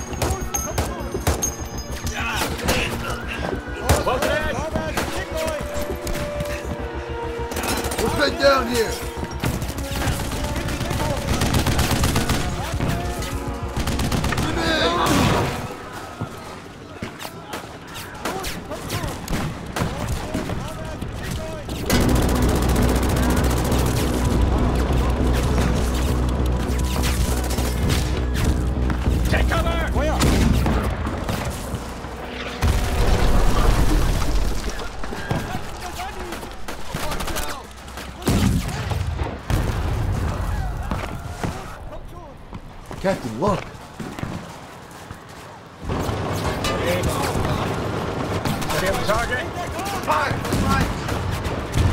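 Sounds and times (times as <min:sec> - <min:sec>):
film music score: 0:00.0 - 0:38.4
rifle and machine-gun fire: 0:09.4 - 0:12.8, 0:13.6 - 0:15.2, 0:19.3 - 0:28.1
people shouting: 0:12.2 - 0:19.3, 0:40.2 - 0:41.9
explosions booming: 0:32.6 - 0:35.8, 0:38.2 - 0:41.0.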